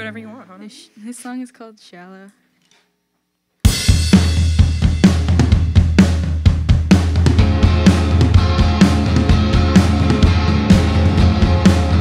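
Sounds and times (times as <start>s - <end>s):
drum kit beat: 3.6s - 12.0s
live pop band playing: 3.8s - 12.0s.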